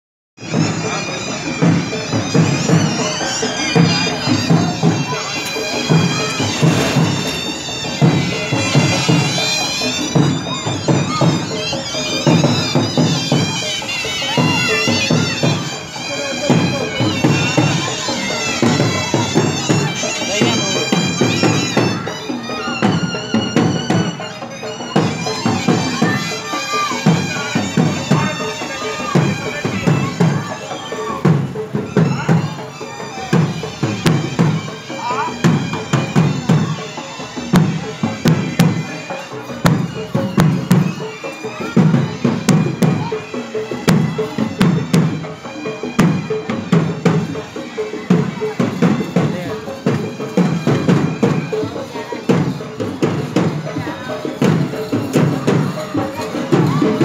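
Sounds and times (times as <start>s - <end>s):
crowd voices: 0.4s - 57.0s
slow steady drumbeat: 0.4s - 57.0s
wind instrument playing a tune: 0.4s - 57.0s.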